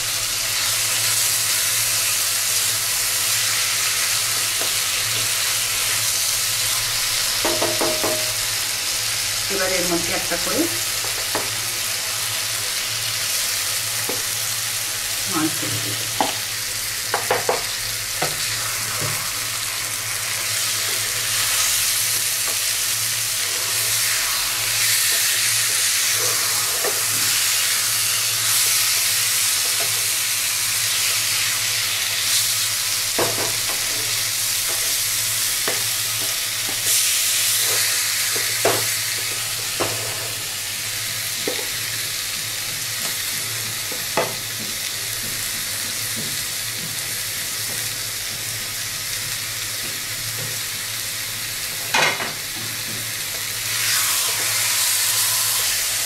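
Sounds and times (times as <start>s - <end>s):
fish sizzling in a wok: 0.0s - 56.0s
spatula knocking on pan: 7.4s - 8.4s, 17.1s - 18.4s, 33.2s - 33.8s.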